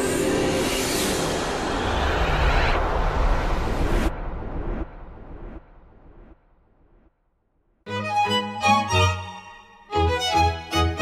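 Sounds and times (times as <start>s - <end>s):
low rumble: 0.2s - 7.8s.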